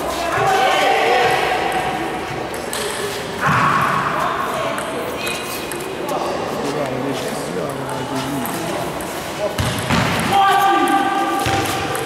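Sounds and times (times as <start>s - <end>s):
voices in echoing hall: 0.0s - 12.0s
table tennis balls bouncing: 7.7s - 12.0s.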